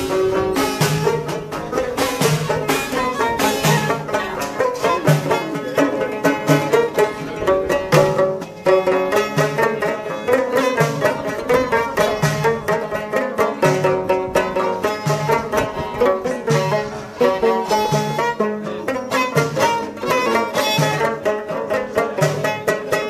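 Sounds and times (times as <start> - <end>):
frame drum beat: 0.0 - 23.0
plucked lute: 0.0 - 23.0.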